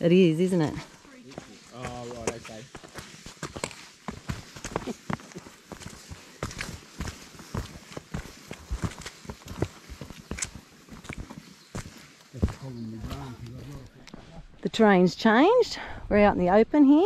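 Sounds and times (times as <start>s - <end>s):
boots crunching on leaves and rock: 0.8s - 13.8s.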